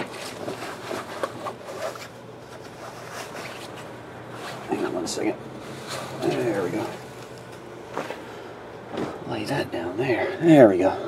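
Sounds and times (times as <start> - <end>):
clothing rustling: 0.0 - 9.2
soft handling noises: 0.0 - 9.3.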